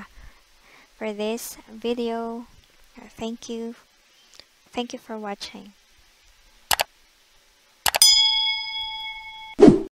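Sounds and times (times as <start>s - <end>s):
notification bell ding: 8.0s - 9.6s.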